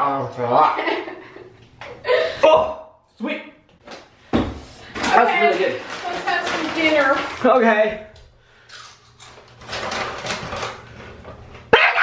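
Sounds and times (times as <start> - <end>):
plastic chip bag crinkling: 5.1 - 7.8.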